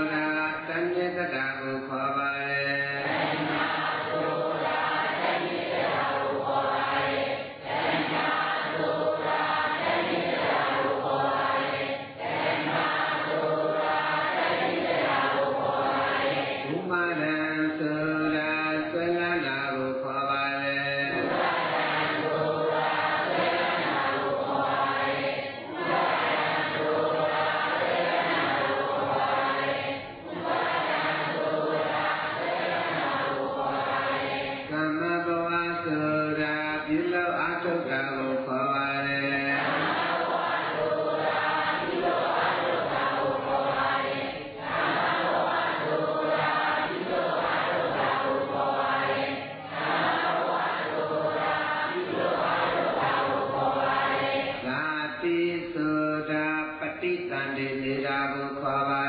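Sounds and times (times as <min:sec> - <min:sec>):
voices chanting: 0:02.7 - 0:17.2, 0:20.7 - 0:34.8, 0:39.1 - 0:54.8.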